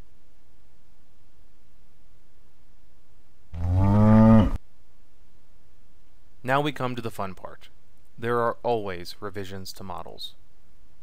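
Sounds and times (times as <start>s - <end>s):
cow mooing: 3.6s - 4.6s.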